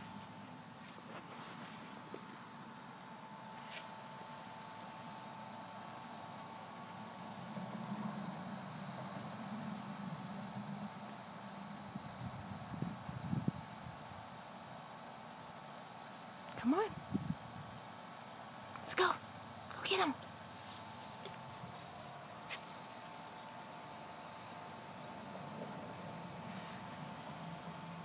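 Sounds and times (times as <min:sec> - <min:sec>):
low mechanical hum: 0:00.0 - 0:28.0.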